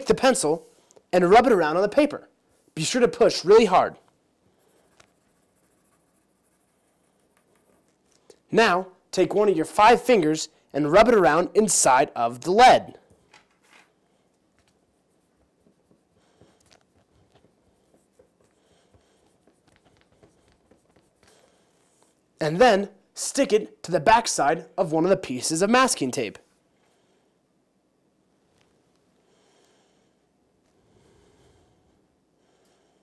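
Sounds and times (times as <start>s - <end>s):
pencil scratching on paper: 4.4s - 8.1s, 14.6s - 22.2s.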